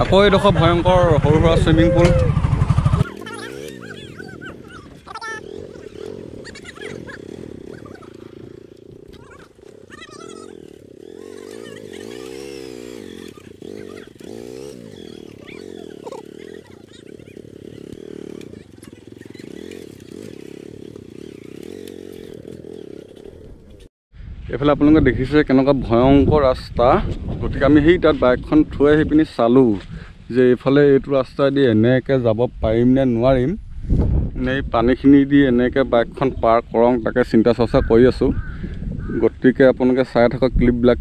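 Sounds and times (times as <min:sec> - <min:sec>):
motorcycle engine running: 0:00.0 - 0:23.9.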